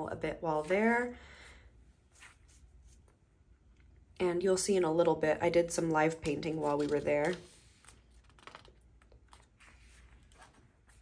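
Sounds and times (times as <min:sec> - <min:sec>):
notebook page rustling: 0:02.1 - 0:03.0, 0:06.2 - 0:11.0.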